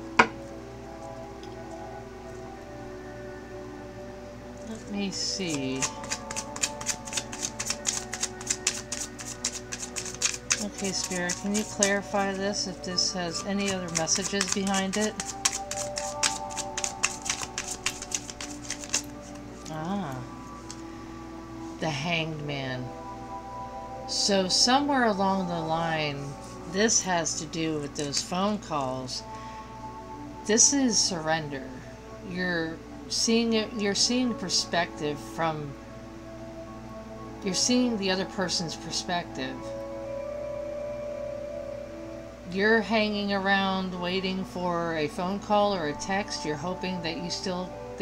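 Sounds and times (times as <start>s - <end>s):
soft background music: 0.0s - 48.0s
cards being shuffled: 5.4s - 12.4s, 13.3s - 19.8s, 28.0s - 28.3s.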